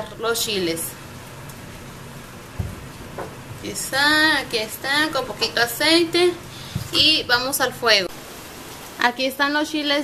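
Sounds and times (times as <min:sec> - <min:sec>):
steady hiss: 0:00.0 - 0:09.9.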